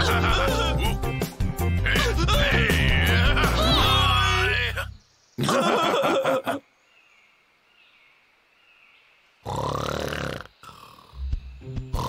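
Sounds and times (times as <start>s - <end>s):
cartoon laughter: 0.0s - 1.2s, 1.8s - 4.8s, 5.4s - 6.6s
cartoon character snoring: 9.4s - 11.3s.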